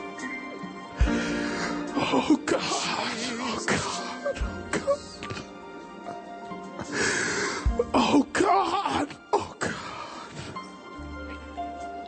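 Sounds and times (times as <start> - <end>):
slow church worship music: 0.0 - 12.0.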